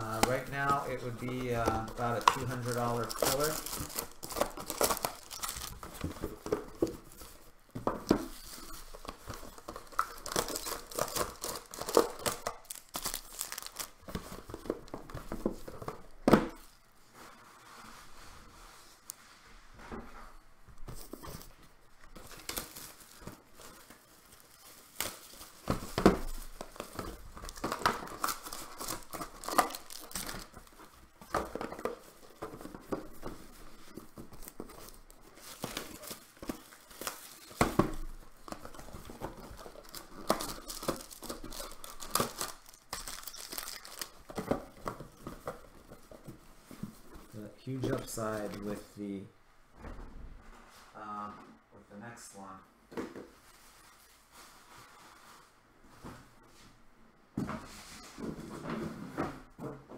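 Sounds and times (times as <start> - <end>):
foil wrappers crinkling and tearing: 0.0 - 7.5, 8.2 - 15.9, 21.0 - 48.9.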